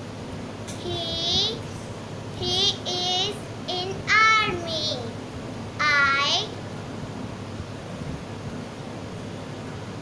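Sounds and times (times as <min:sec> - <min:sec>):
girl speaking sing-song: 0:00.7 - 0:01.8, 0:02.4 - 0:05.2, 0:05.8 - 0:06.6.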